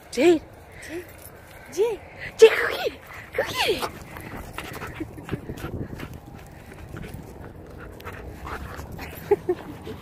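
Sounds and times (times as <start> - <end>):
dog panting: 3.0 - 10.0.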